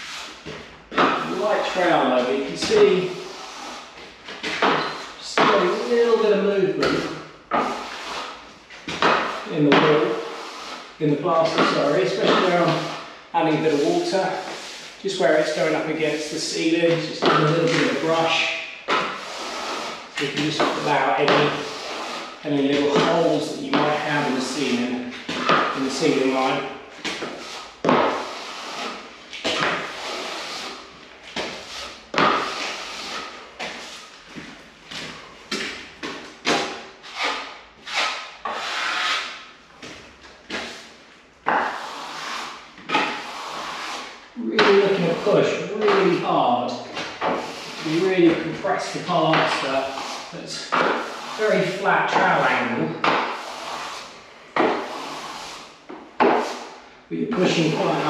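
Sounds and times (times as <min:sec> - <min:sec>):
trowel scraping plaster: 0:00.0 - 0:58.0.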